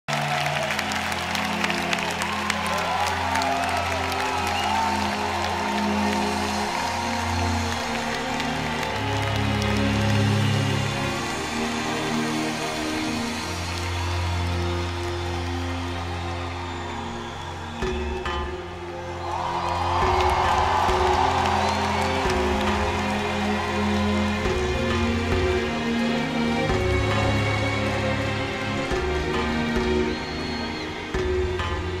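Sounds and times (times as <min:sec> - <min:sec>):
crowd clapping: 0:00.0 - 0:32.0
crowd cheering and screaming: 0:00.1 - 0:32.0.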